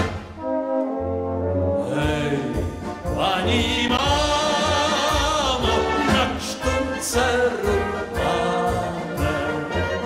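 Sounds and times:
brass band playing: 0.0s - 10.0s
tuba bass line: 0.0s - 10.0s.

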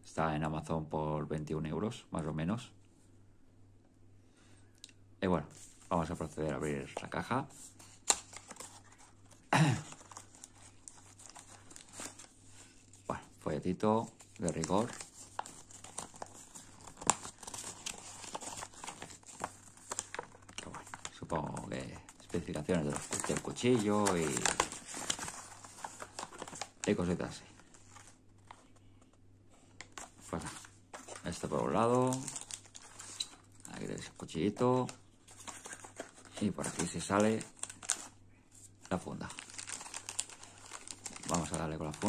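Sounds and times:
cardboard and paper rustling: 5.5s - 13.2s, 13.9s - 28.8s, 29.8s - 42.0s.

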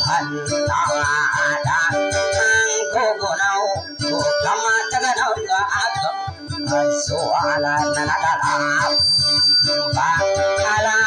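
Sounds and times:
guitar wavering melody: 0.0s - 11.0s.

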